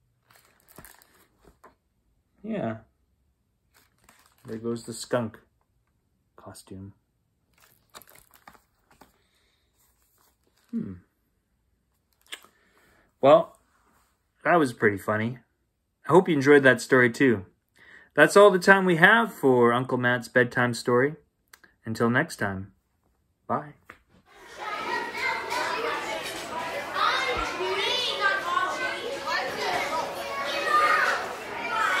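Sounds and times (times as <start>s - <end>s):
book handling taps and rustles: 0.3s - 1.8s, 7.6s - 9.2s
children calling and chattering: 24.3s - 32.0s.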